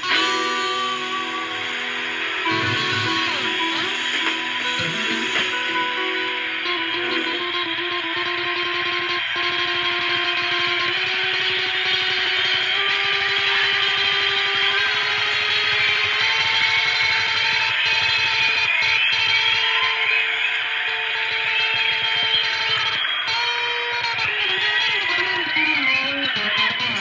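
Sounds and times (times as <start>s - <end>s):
electric guitar with heavy echo: 0.0s - 27.0s.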